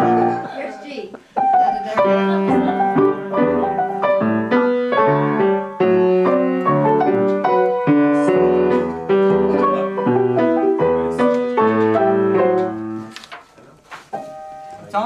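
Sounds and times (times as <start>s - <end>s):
piano playing: 0.0s - 13.3s, 14.1s - 15.0s.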